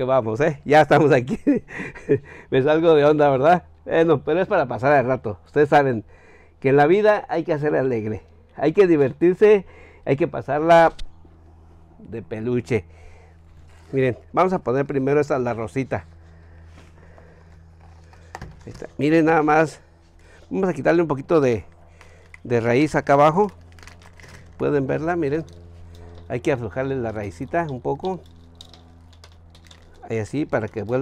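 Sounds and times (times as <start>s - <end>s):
low steady hum: 0.0s - 31.0s
roots and soil crackling: 13.1s - 31.0s.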